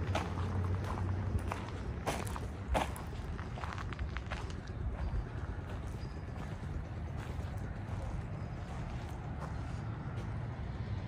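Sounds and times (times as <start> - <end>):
footsteps on dry dirt: 0.0 - 10.8.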